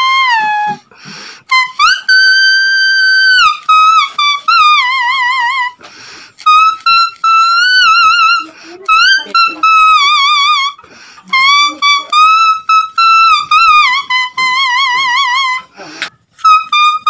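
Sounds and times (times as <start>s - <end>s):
leaf whistle melody: 0.0s - 15.7s, 16.4s - 17.0s.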